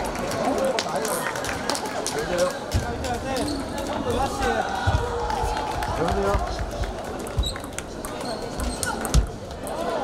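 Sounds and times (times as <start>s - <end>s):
voices in a hall: 0.0s - 10.0s
table tennis balls clicking: 6.1s - 9.8s.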